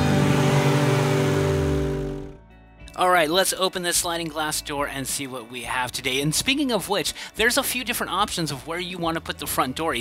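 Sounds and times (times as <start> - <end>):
car engine running: 0.0 - 2.4.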